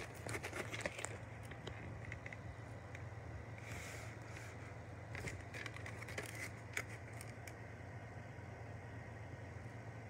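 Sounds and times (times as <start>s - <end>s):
plastic case clicks and rustles: 0.0s - 2.5s, 5.1s - 7.6s.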